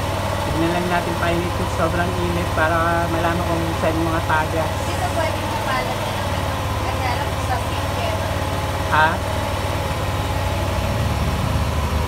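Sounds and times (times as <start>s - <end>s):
scooter engine idling: 0.0s - 12.0s.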